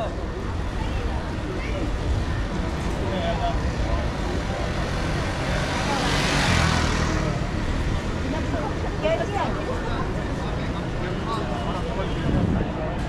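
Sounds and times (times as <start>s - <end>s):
passersby talking: 0.0s - 13.0s
traffic rumble: 0.0s - 13.0s
motor vehicle passing close: 4.5s - 8.6s.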